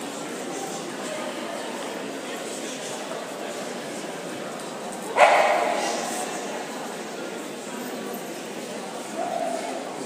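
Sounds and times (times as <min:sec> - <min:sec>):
murmur of background chatter: 0:00.0 - 0:10.0
dog barking: 0:05.2 - 0:06.0.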